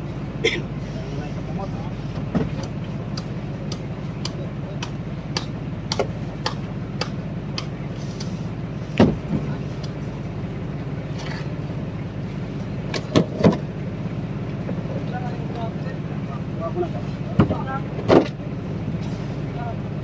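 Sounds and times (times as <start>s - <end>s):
low motor hum: 0.0s - 20.0s.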